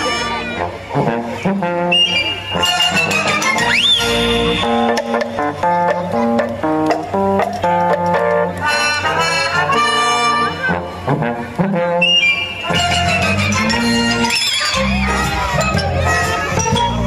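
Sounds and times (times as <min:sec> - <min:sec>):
lively instrumental melody: 0:00.0 - 0:17.0.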